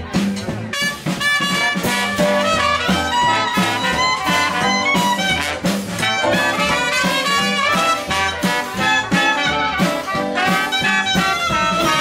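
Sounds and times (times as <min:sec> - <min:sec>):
jazz band playing: 0:00.0 - 0:12.0
trombone: 0:00.7 - 0:12.0.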